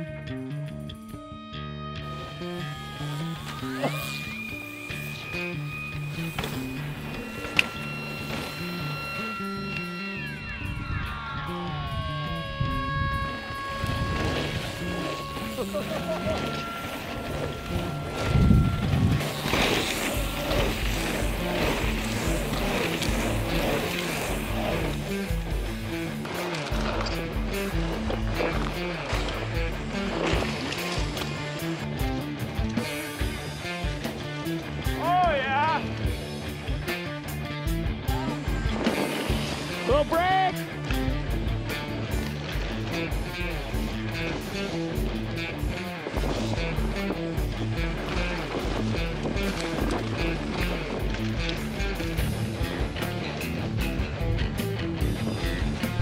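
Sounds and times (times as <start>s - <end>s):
sustained tones sliding downward: 1.8s - 19.2s
background music with beat: 14.6s - 56.0s.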